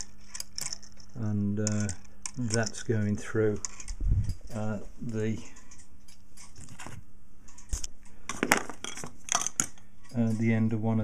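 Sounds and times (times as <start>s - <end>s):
small metal parts clinking: 0.0s - 2.9s, 3.6s - 4.6s, 7.5s - 10.2s.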